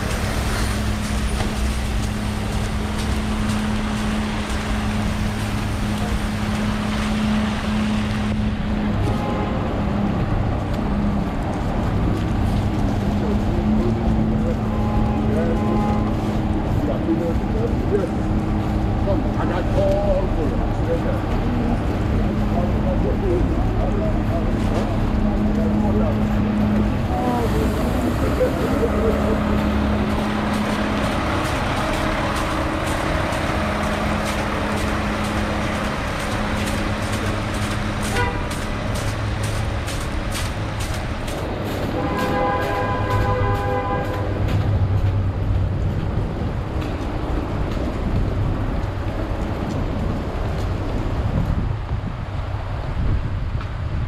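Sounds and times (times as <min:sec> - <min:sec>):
city street traffic: 0:00.0 - 0:54.0
vehicle horn: 0:09.0 - 0:09.8, 0:14.6 - 0:16.3, 0:38.0 - 0:38.6, 0:41.9 - 0:44.4.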